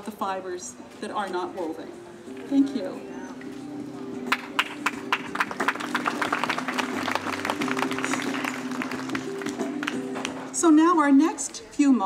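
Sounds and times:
background music with held notes: 0.0s - 12.0s
audience clapping: 4.3s - 10.5s.

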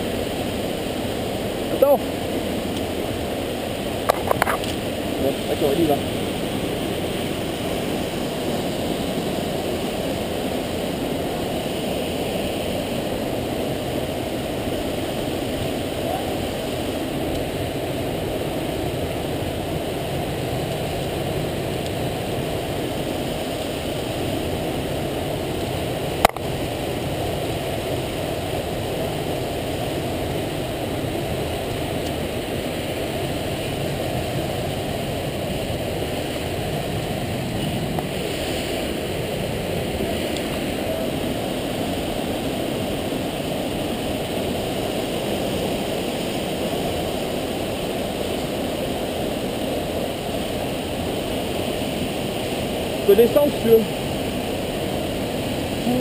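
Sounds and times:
mountain torrent and waterfall roar: 0.0s - 56.0s.

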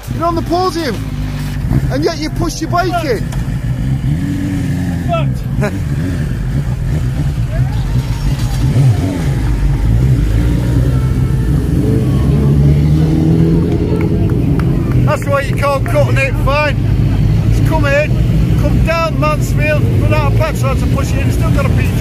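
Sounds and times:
motorcycle engines running: 0.0s - 22.0s.

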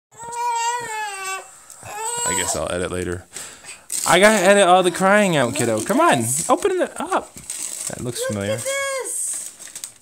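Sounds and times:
toddler crying: 0.1s - 2.7s.

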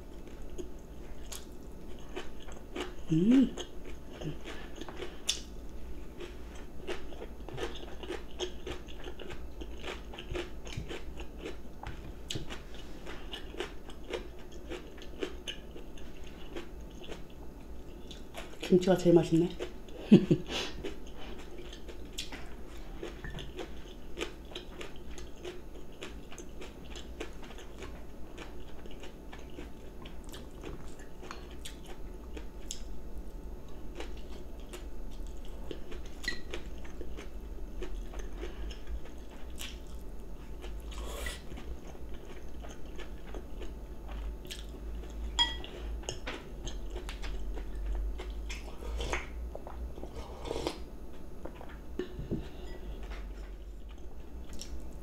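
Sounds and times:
person chewing crunchy food: 0.1s - 18.7s, 19.6s - 55.0s.

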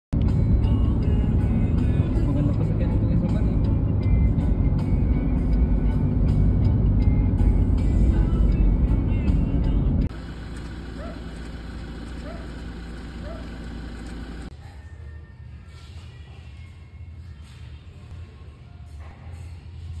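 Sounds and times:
background music: 0.2s - 10.1s
low vehicle rumble: 0.2s - 14.5s.

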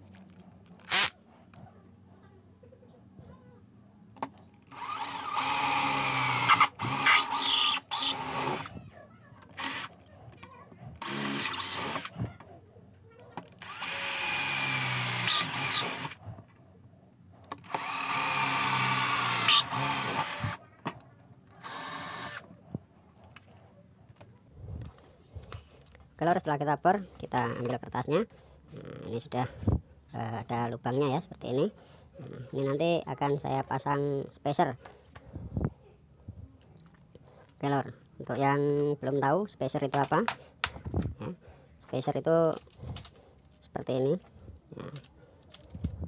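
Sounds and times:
electric drill whining: 0.8s - 1.1s, 4.6s - 8.8s, 9.5s - 10.0s, 11.0s - 12.1s, 13.5s - 16.2s, 17.5s - 20.6s, 21.5s - 22.5s.

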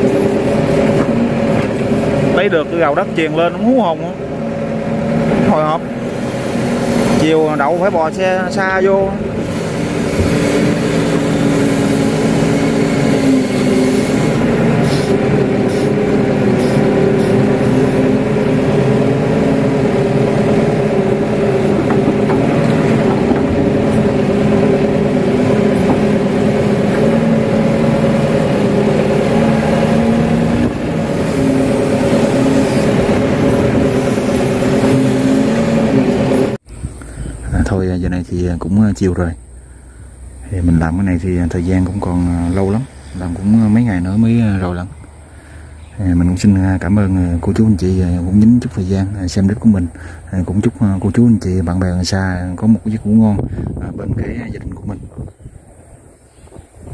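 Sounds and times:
excavator diesel engine and hydraulics: 0.0s - 56.9s.

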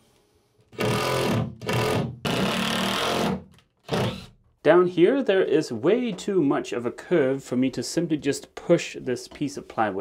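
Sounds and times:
cordless drill driving a screw: 0.8s - 4.3s.

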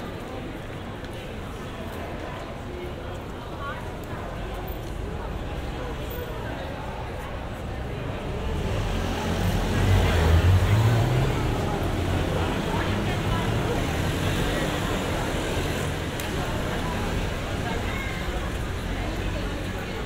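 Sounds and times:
crowd chatter: 0.0s - 20.0s
traffic noise: 0.0s - 20.0s.

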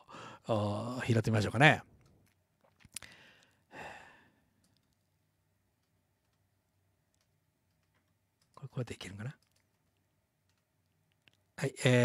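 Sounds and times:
man sighing: 3.0s - 4.4s.

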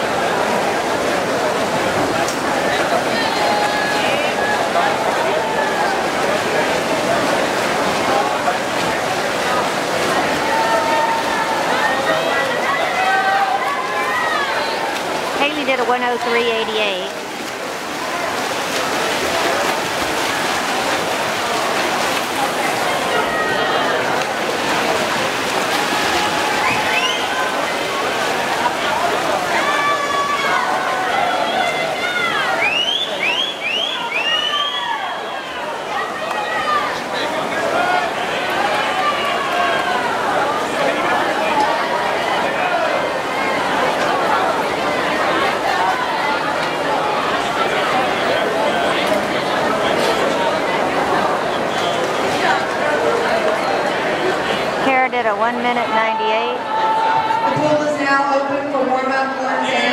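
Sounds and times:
water splashing in pool: 0.0s - 58.7s
crowd cheering and shouting: 2.0s - 7.0s, 9.3s - 17.1s, 19.2s - 59.9s.

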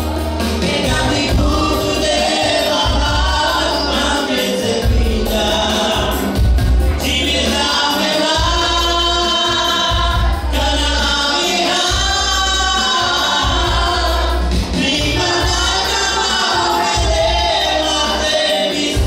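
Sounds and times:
electronic keyboard accompaniment: 0.0s - 19.0s
gospel song singing: 0.0s - 19.0s.

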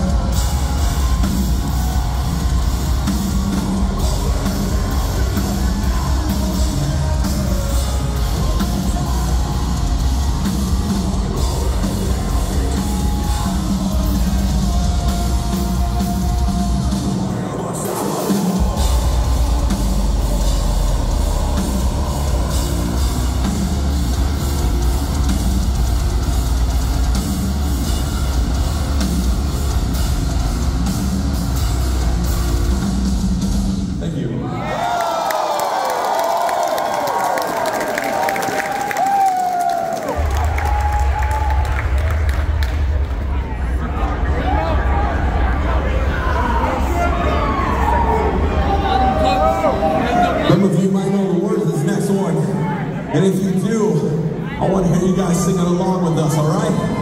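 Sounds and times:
metalcore band playing live: 0.0s - 34.0s.

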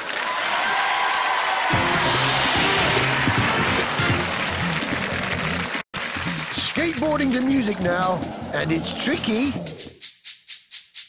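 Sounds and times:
steady rushing noise: 1.7s - 5.2s.

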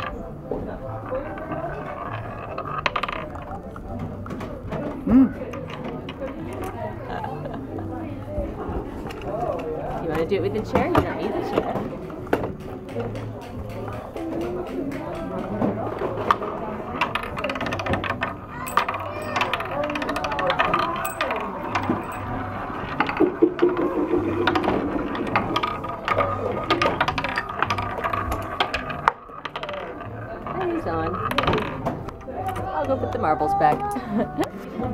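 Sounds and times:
marbles rattling on wooden track: 0.0s - 34.9s.

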